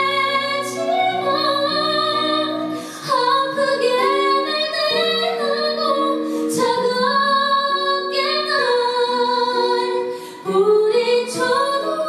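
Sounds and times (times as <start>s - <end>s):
woman singing slow song: 0.0s - 12.0s
singer breathing: 2.6s - 3.1s, 10.1s - 10.5s.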